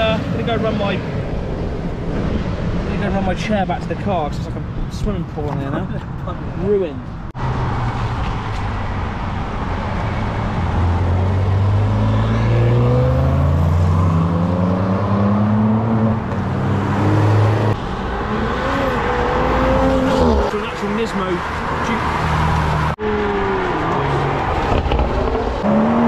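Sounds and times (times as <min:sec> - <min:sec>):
cars driving past on wet road: 0:07.4 - 0:26.0
car engine accelerating: 0:22.3 - 0:26.0.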